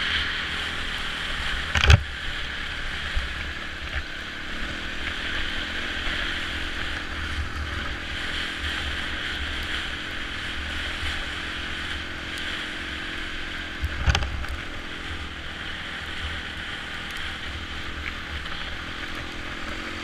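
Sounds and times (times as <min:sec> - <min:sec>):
motorcycle engine running: 0:00.0 - 0:20.0
wind rushing over microphone: 0:00.0 - 0:20.0.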